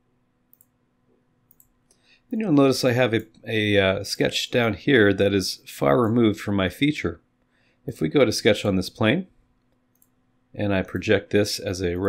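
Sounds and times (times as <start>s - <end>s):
computer mouse clicks: 0.5s - 0.8s, 1.4s - 2.1s, 9.6s - 10.2s.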